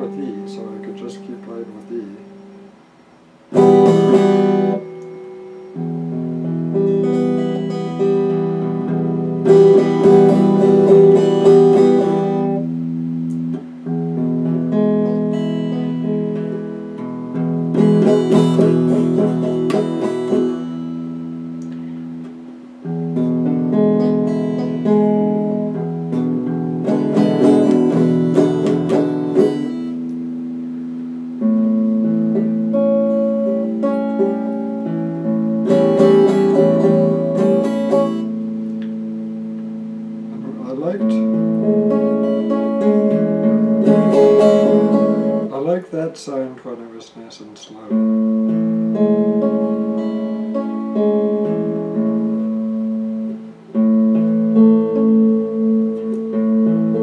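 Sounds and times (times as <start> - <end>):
electric guitar improvising: 0.0 - 57.0.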